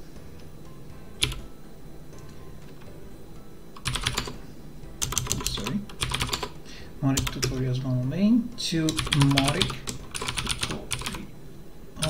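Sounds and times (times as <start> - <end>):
typing on computer keyboard: 3.8 - 4.4, 5.0 - 6.6, 7.2 - 7.6, 8.9 - 11.2.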